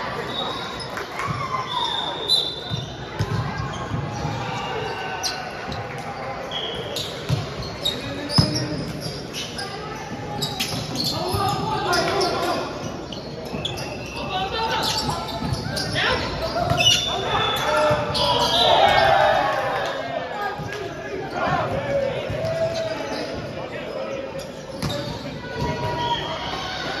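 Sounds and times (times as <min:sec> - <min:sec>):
players shouting: 0:14.0 - 0:24.2.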